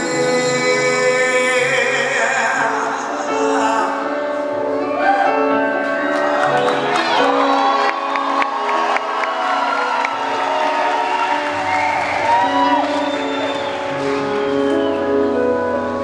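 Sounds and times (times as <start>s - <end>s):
keyboard playing sustained chords: 0.0s - 16.0s
audience cheering and whooping: 6.1s - 15.7s.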